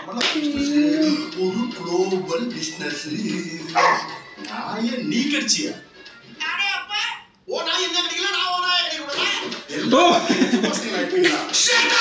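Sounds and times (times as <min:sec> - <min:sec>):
dialogue: 0:00.0 - 0:12.0
film music: 0:00.0 - 0:12.0
dog barking: 0:03.8 - 0:04.2.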